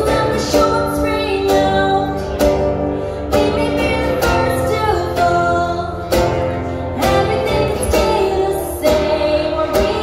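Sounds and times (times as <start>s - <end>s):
woman singing: 0.0s - 2.6s, 3.3s - 10.0s
acoustic guitar strumming: 0.0s - 10.0s.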